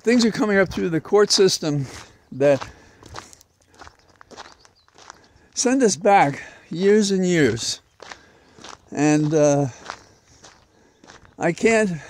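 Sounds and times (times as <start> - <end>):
footsteps walking: 0.1 - 6.4, 7.4 - 12.0.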